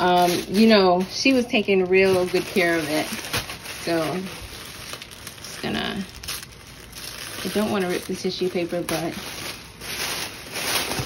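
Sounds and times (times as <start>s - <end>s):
tissue paper rustling: 0.0s - 11.0s.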